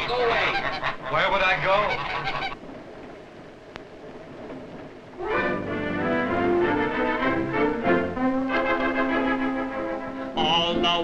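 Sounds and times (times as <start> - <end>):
film soundtrack hiss and crackle: 0.0 - 11.0.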